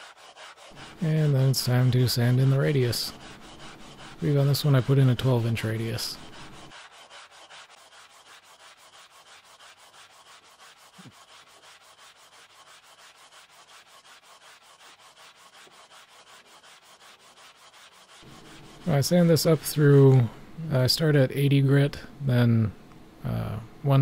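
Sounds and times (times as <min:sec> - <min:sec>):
sandpaper rubbing on wood: 0:00.0 - 0:20.0.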